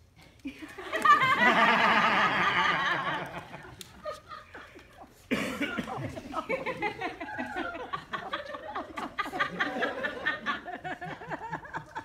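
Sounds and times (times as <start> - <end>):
audience laughter: 0.5 - 12.0.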